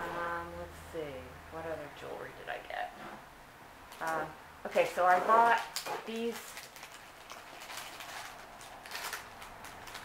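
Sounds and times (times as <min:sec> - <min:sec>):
plastic bags rustling and crinkling: 0:03.9 - 0:10.0.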